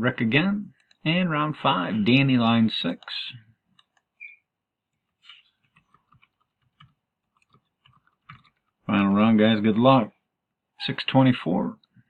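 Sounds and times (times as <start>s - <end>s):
keyboard keystrokes: 5.7s - 8.7s.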